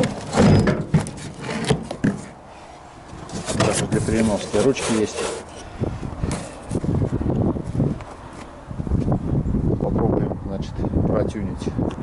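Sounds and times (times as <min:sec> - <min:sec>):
wind buffeting microphone: 0:05.6 - 0:12.0.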